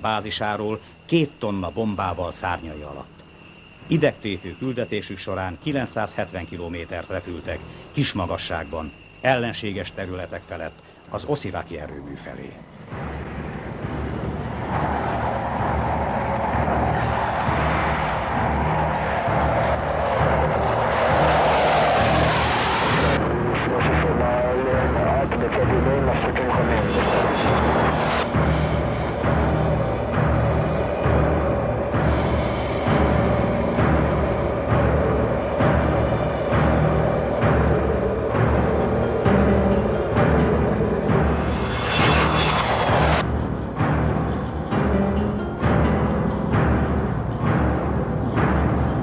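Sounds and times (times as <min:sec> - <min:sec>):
dramatic orchestral music: 0:12.8 - 0:49.0
jet aircraft rushing: 0:12.9 - 0:43.8
pounding timpani and drums: 0:12.9 - 0:49.0.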